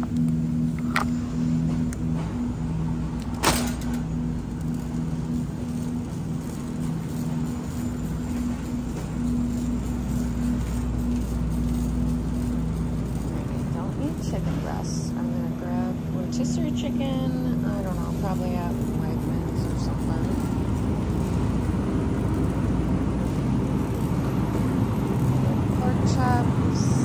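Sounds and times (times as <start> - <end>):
shopping cart rolling: 0.1 - 27.0.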